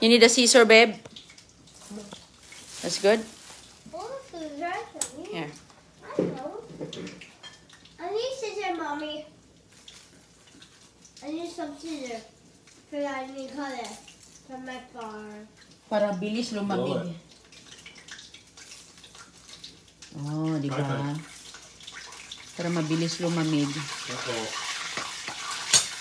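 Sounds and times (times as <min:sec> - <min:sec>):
people speaking: 0:02.8 - 0:03.3, 0:03.9 - 0:06.6
child's voice: 0:03.9 - 0:05.4, 0:06.0 - 0:06.9, 0:08.0 - 0:09.4, 0:11.2 - 0:15.5.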